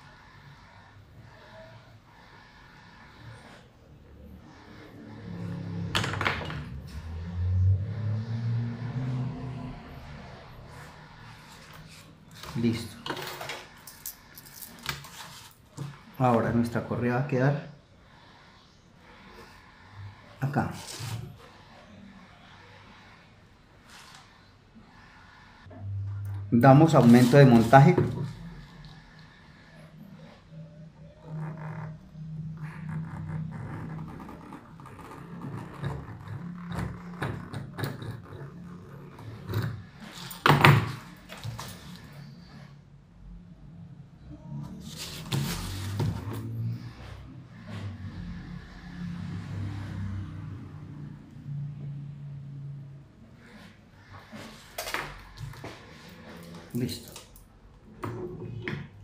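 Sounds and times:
paper rustling on tabletop: 44.8s - 46.3s.

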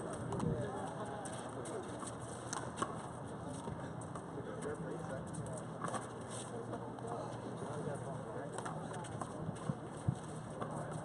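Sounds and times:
distant people talking: 0.0s - 2.1s, 3.1s - 9.9s
outdoor background noise: 0.0s - 11.0s.

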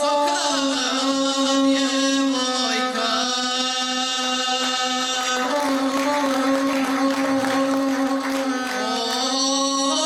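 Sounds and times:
boy chanting: 0.0s - 10.0s.

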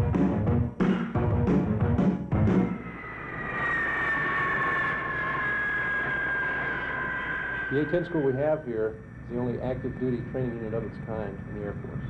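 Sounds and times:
jet engines whining: 1.1s - 12.0s.

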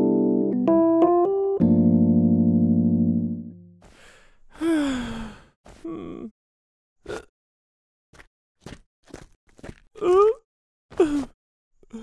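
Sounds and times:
old woman sighing: 4.5s - 6.3s.

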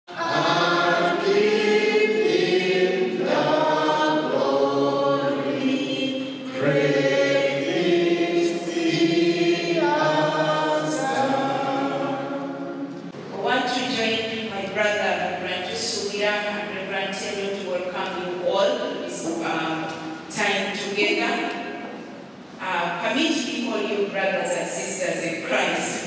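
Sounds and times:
group singing a slow hymn: 0.1s - 13.2s.

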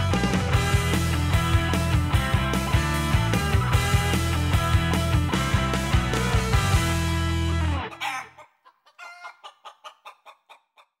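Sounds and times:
rapid clucking calls: 7.8s - 11.0s.

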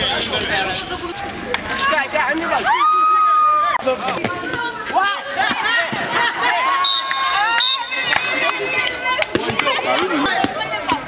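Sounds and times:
players calling out: 0.0s - 11.0s
ball slapping hands and concrete: 8.8s - 11.0s.

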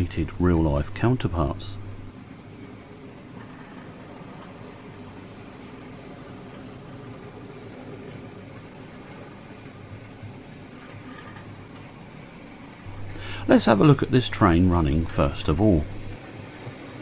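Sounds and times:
wheels rolling on rail: 0.0s - 17.0s
electric motor hum: 1.0s - 2.1s, 12.8s - 16.2s.

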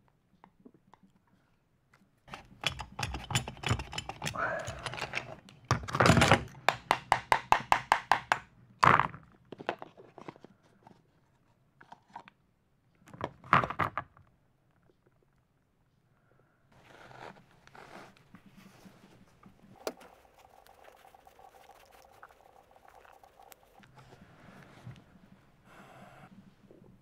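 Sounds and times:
metal drill chuck clicks: 2.3s - 5.4s.

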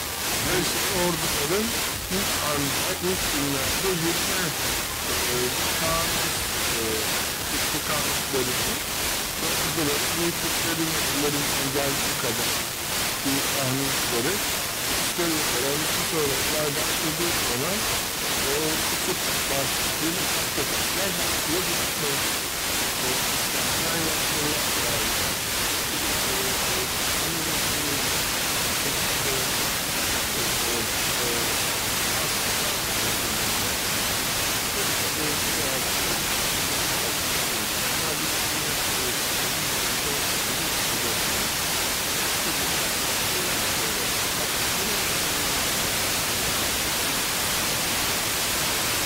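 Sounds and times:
radio static hiss: 0.0s - 49.0s
faint speech on radio: 0.4s - 8.8s, 9.4s - 12.5s, 13.2s - 14.4s, 15.0s - 22.3s, 23.0s - 25.1s, 25.8s - 28.1s, 28.8s - 29.6s, 30.3s - 33.7s, 34.7s - 41.3s, 42.4s - 45.6s.

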